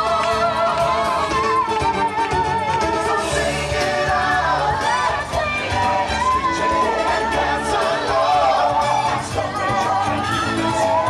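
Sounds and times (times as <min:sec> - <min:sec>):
upbeat song with singing: 0:00.0 - 0:11.0.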